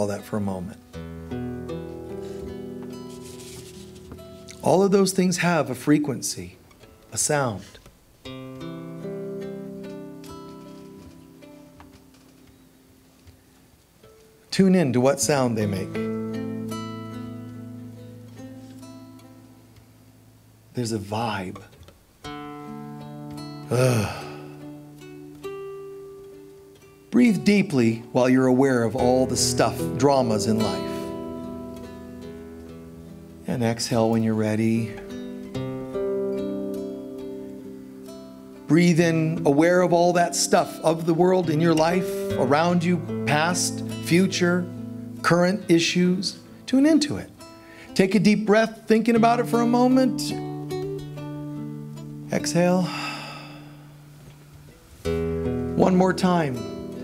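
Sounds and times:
acoustic guitar plucked notes: 0.0 - 13.4, 14.0 - 57.0
breathy exhale hiss: 52.8 - 54.2.

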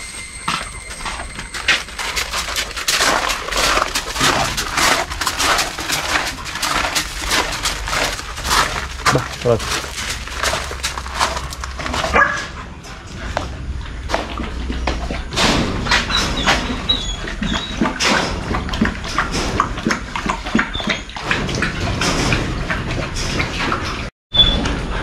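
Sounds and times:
dog eating from metal bowl: 0.0 - 25.0.

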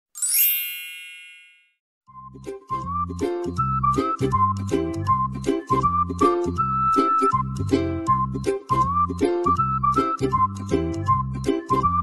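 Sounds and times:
bright chime with upward sweep: 0.1 - 1.7.

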